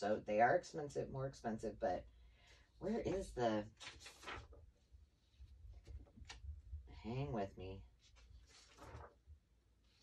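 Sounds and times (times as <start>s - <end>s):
paper receipt rustling: 3.1s - 4.6s, 8.0s - 9.2s.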